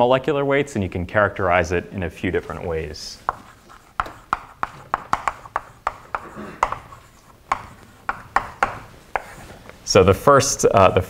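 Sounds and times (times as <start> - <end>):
chalk scratching: 2.5 - 9.7
chalk tapping on blackboard: 3.2 - 9.7.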